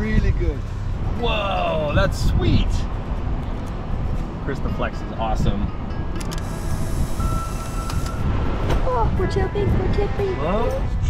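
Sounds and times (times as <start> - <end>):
off-road vehicle rumble: 0.0 - 11.0
electronic beep: 6.6 - 8.3.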